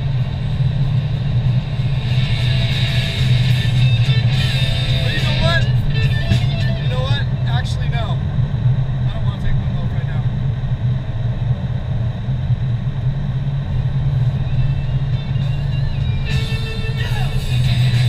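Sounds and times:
car engine and tyres rumbling: 0.0s - 18.0s.

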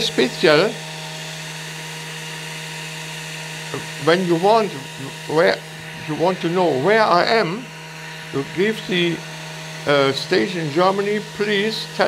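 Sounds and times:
electrical hum and whine: 0.0s - 12.0s.

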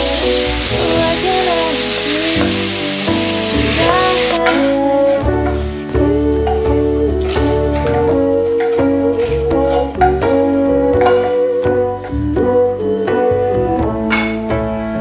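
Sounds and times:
tomatoes sizzling in frying pan: 0.0s - 5.6s
background music: 0.0s - 15.0s.

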